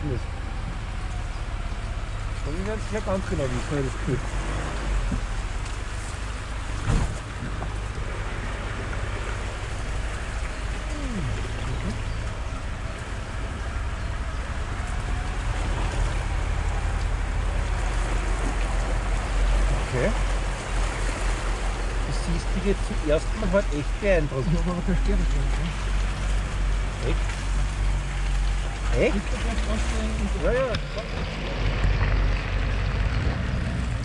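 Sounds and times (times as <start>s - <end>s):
low engine rumble: 0.0s - 34.0s
tyres working through mud: 0.0s - 34.0s.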